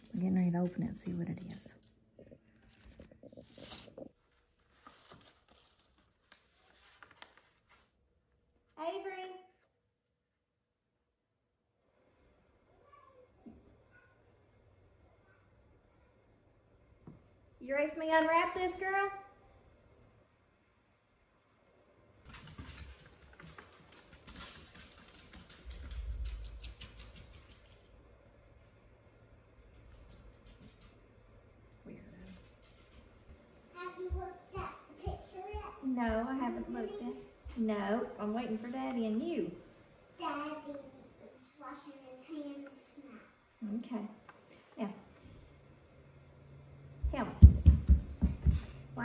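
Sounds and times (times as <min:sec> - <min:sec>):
gift wrapping paper crinkling: 0:02.5 - 0:08.0.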